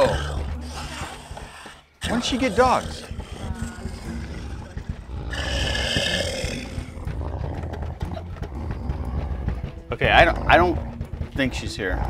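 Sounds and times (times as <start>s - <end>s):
dogs growling and snarling: 0.0s - 12.0s.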